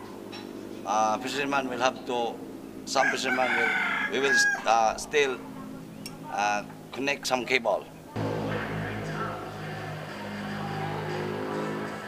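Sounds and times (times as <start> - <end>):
rooster crowing: 2.9 - 5.0.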